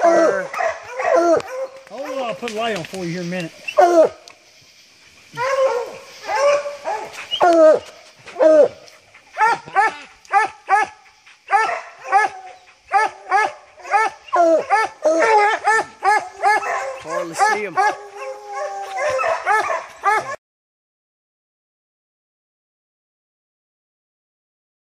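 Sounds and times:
hounds barking: 0:00.0 - 0:02.7, 0:03.7 - 0:04.2, 0:05.2 - 0:20.4.

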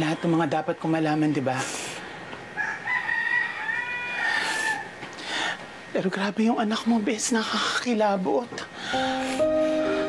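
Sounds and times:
rooster crowing: 0:02.6 - 0:04.9.

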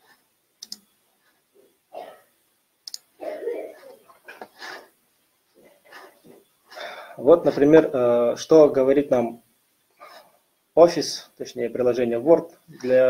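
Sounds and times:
sharp computer clicks: 0:00.6 - 0:00.9, 0:02.8 - 0:03.1
quiet muttered speech: 0:03.2 - 0:04.4.

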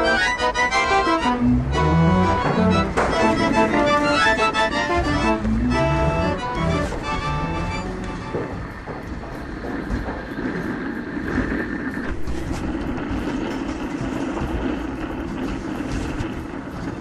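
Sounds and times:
vehicle rumble: 0:00.0 - 0:17.0.

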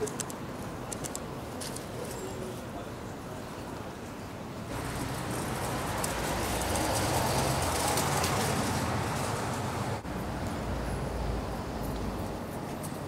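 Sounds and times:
city street traffic: 0:00.0 - 0:13.0
vehicle passing close: 0:04.7 - 0:12.2.

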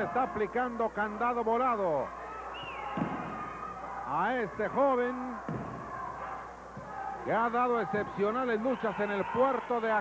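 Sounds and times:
faint arena background noise: 0:00.0 - 0:10.0.

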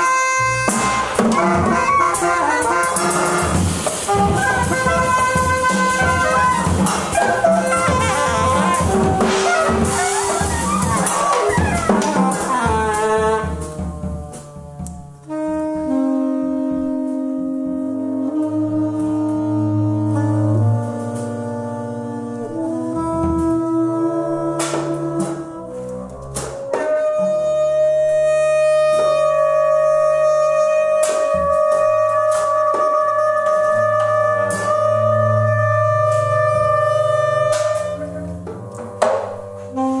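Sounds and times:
jazz ensemble music: 0:00.0 - 0:40.0.

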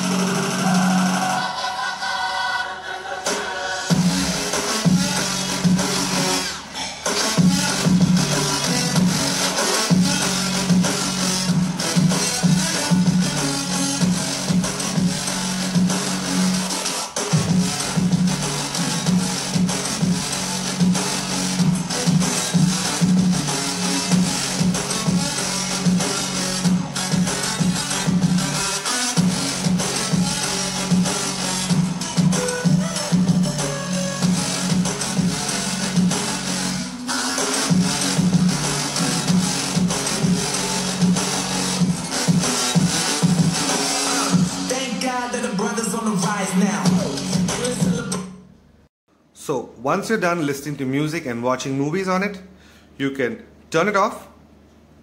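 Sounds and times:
distorted music with heavy bass beat: 0:00.0 - 0:48.4.

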